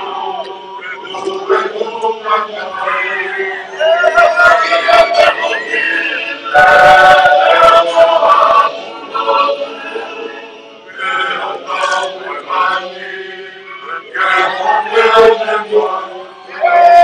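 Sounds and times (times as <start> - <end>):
crowd chanting and singing: 0.0 - 17.0.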